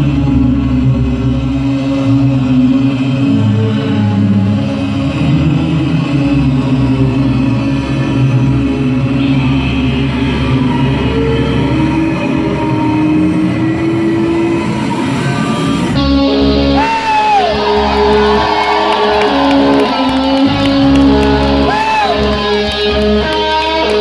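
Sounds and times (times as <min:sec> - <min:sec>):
low drone: 0:00.0 - 0:24.0.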